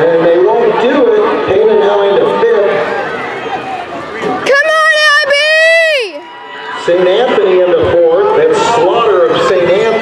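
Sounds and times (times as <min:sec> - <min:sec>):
spectator yelling high-pitched cheer: 0:04.5 - 0:06.8.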